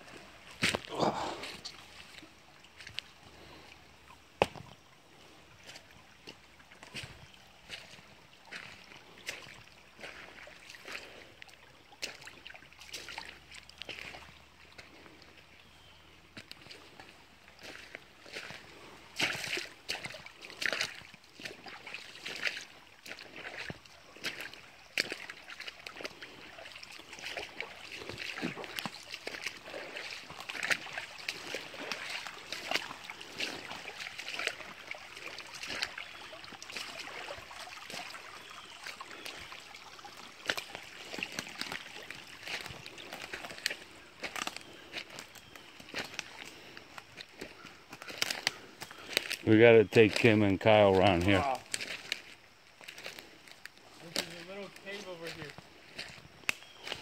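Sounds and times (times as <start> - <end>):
footsteps splashing through creek: 0.0 - 57.0
running creek water: 0.0 - 57.0.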